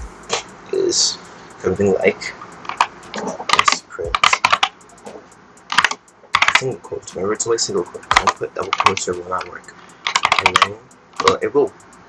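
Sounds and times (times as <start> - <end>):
computer keyboard typing: 2.6 - 11.7.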